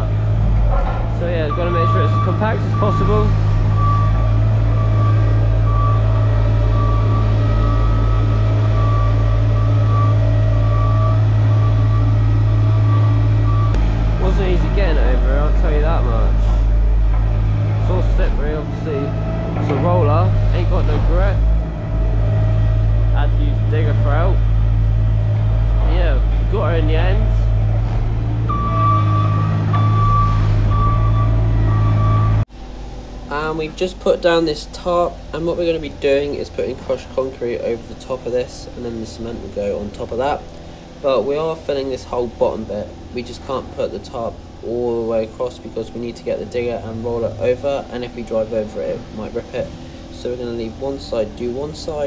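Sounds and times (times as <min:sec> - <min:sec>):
diesel roller engine humming: 0:00.0 - 0:52.0
reversing alarm beeps: 0:01.4 - 0:13.8, 0:28.4 - 0:32.4.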